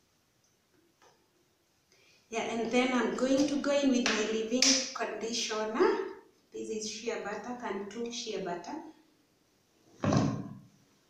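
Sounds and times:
plastic tub thump: 10.0s - 10.6s.

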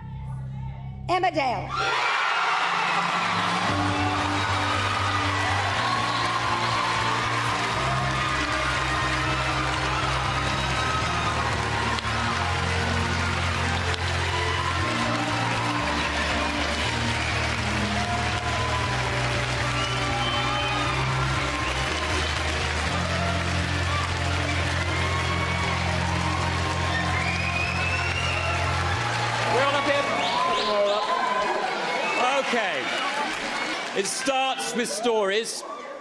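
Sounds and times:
audience cheering and applauding: 1.7s - 36.0s
loud play-on music: 2.6s - 30.5s.

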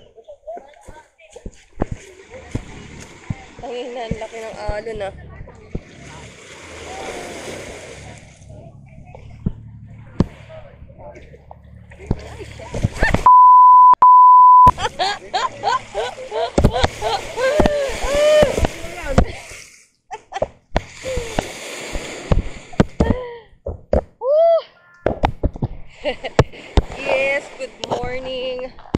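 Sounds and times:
surf splashing on beach: 1.8s - 8.6s, 14.7s - 19.8s, 20.8s - 23.2s
loud steady beep: 13.2s - 14.7s
excited shouting voices: 15.6s - 18.6s.

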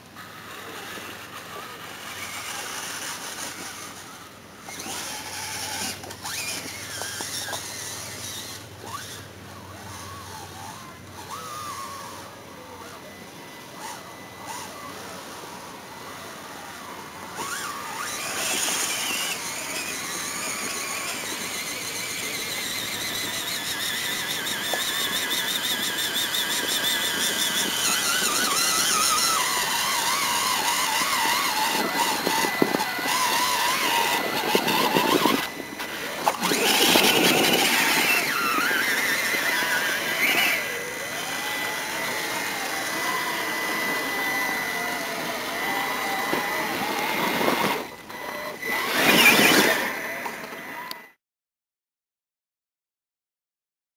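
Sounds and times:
rc car motors whining: 0.0s - 51.2s.

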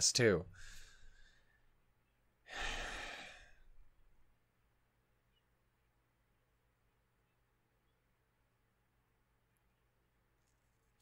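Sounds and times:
man sighing: 2.5s - 3.7s.

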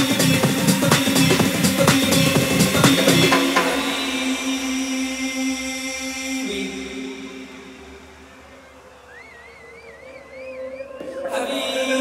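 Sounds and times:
low synth pad tone: 3.8s - 12.0s.

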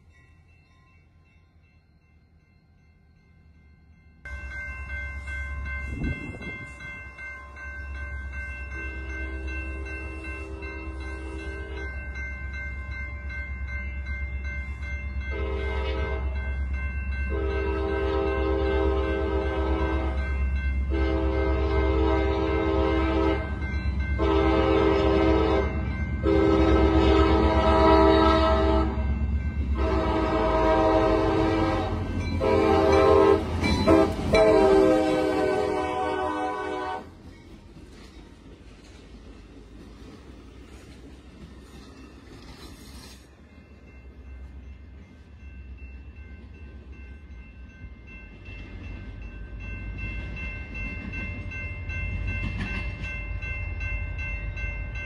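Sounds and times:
train air horn blasts: 15.3s - 16.4s, 17.3s - 20.3s, 20.9s - 23.5s, 24.2s - 29.0s, 29.8s - 37.1s.

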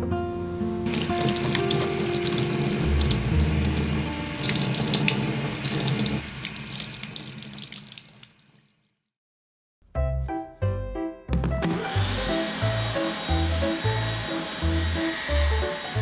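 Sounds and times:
tap water running into sink: 0.9s - 8.8s.

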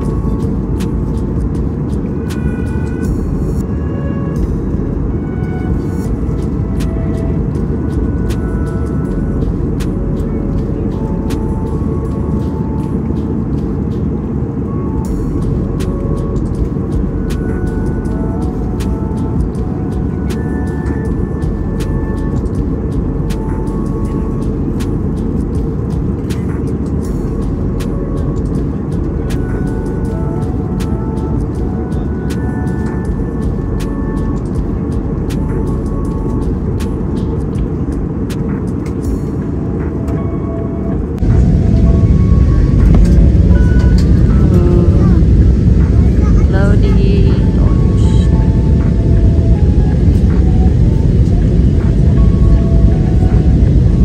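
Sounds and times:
faint music of scattered notes: 0.0s - 54.0s
moving vehicle rumble: 0.0s - 54.0s.

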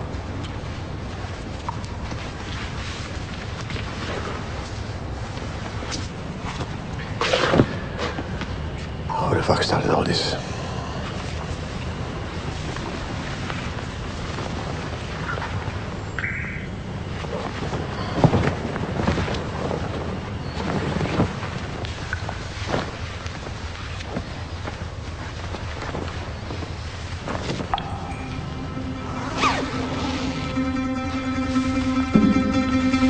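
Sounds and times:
noisy background: 0.0s - 33.0s
music with long held notes: 27.7s - 33.0s.

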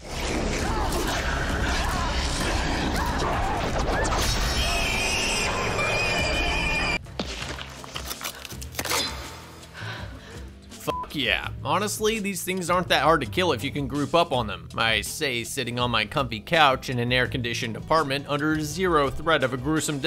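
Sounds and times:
creature screeching: 0.3s - 7.0s
people shouting: 0.4s - 7.0s.

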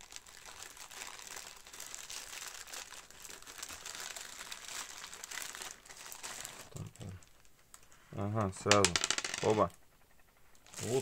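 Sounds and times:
plastic mailer crinkling: 0.0s - 7.9s, 10.6s - 11.0s.

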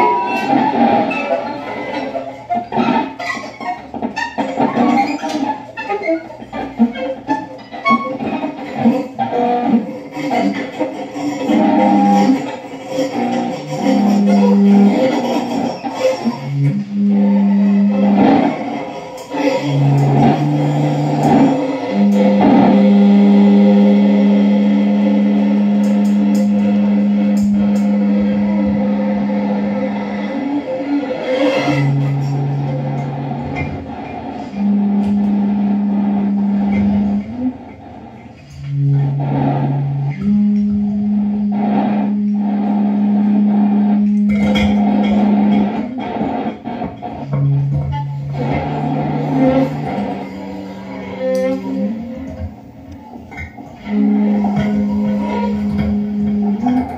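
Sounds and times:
loud low two-pitch drone: 11.4s - 18.8s, 19.5s - 56.9s.

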